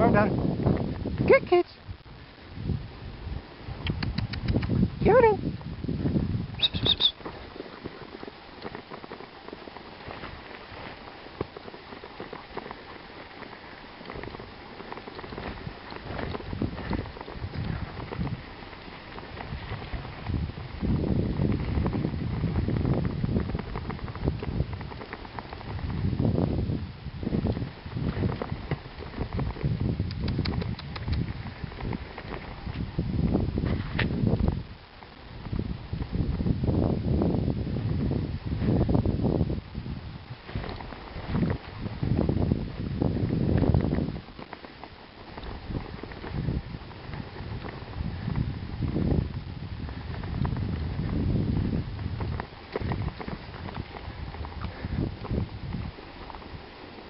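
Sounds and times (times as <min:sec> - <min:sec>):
wind on microphone: 0:00.0 - 0:57.0
paws crunching on snow: 0:02.8 - 0:57.0.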